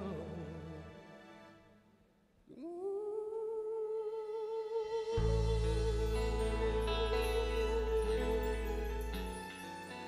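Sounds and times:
soft accompaniment: 4.7 - 10.0.

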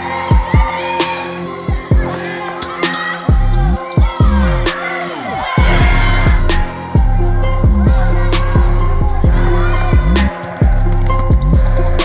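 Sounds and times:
hip-hop backing music: 0.0 - 12.0.

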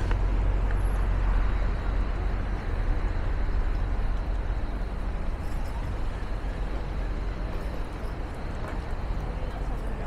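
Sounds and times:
low rumble of road traffic: 0.0 - 10.0.

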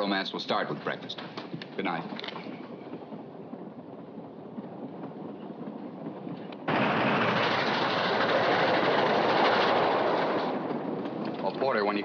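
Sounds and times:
train rumbling on rails: 0.0 - 12.0.

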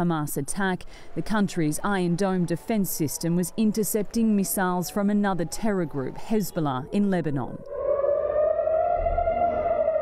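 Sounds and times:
air-raid siren wailing: 7.6 - 10.0.

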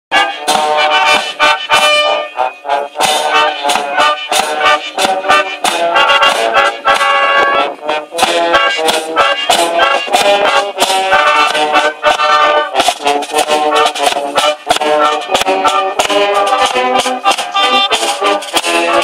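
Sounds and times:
brass band playing a march: 0.1 - 19.0
bass drum beats: 3.0 - 19.0.

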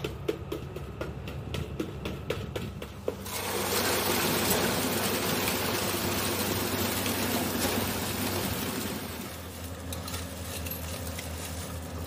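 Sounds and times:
concrete rushing from hose: 3.2 - 9.7.

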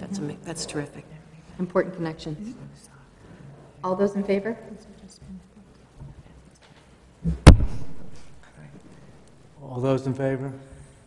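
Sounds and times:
soft low thumps: 7.2 - 8.2.

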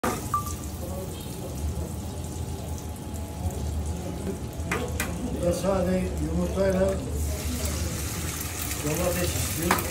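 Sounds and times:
butter sizzling on a griddle: 0.0 - 9.9.

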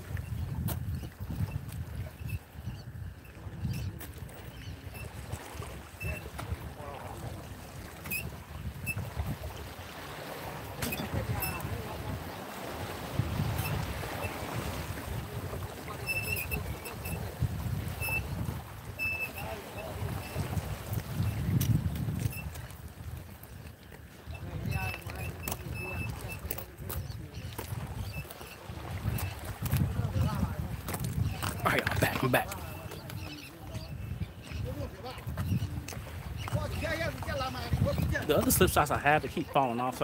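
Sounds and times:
wind gusting over microphone: 0.0 - 39.5.

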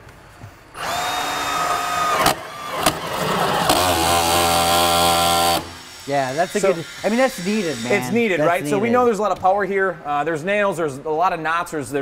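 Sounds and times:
drill boring into wood: 0.8 - 8.1.

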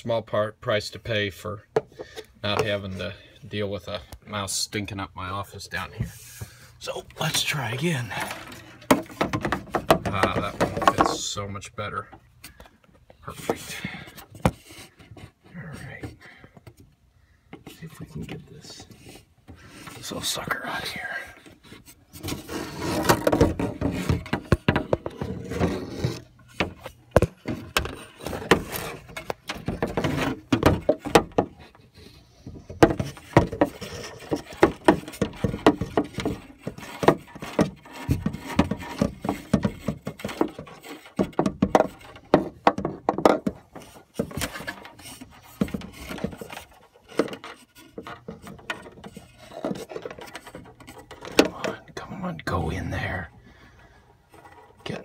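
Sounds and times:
objects scraping against wood: 5.7 - 16.9, 17.5 - 55.0.

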